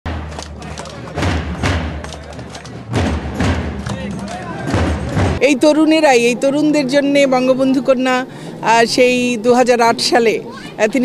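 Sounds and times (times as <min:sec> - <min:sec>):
drums beating: 0:00.1 - 0:06.1
crowd chatter: 0:00.1 - 0:11.0.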